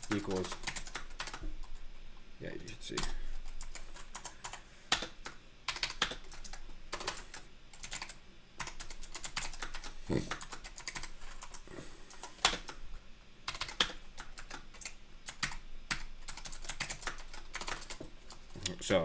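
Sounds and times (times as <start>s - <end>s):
typing on computer keyboard: 0.0s - 1.8s, 3.0s - 12.8s, 13.5s - 18.5s.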